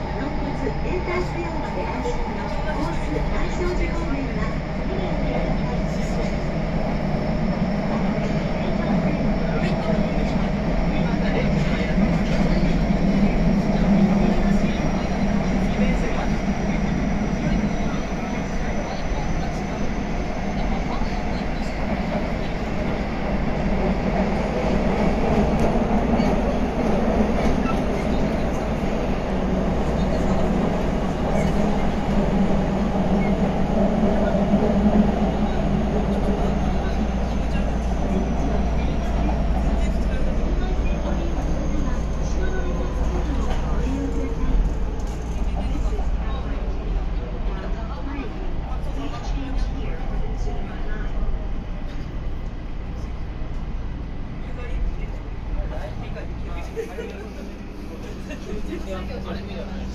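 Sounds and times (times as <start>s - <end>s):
subway wheels rumbling: 0.0s - 59.9s.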